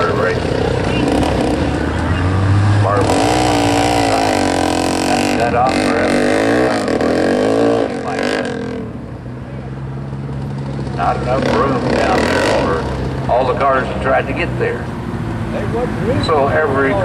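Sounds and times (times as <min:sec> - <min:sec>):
small engines idling and revving: 0:00.0 - 0:17.0.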